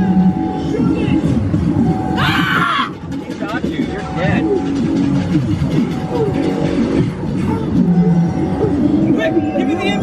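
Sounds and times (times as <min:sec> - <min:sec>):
soundtrack music: 0:00.0 - 0:10.0.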